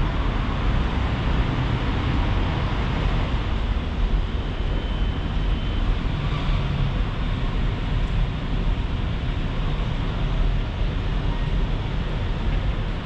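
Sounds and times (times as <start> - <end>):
urban background rumble: 0.0 - 13.0.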